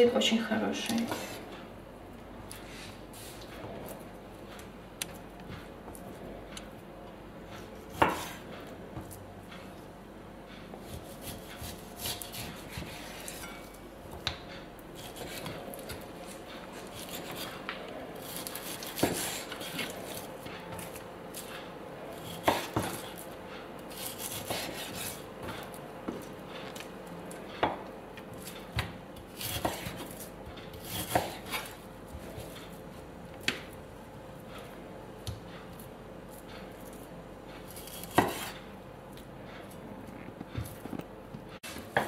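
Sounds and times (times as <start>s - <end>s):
knife slicing raw meat: 10.9s - 13.6s, 23.9s - 25.2s, 29.4s - 31.8s, 37.7s - 38.6s.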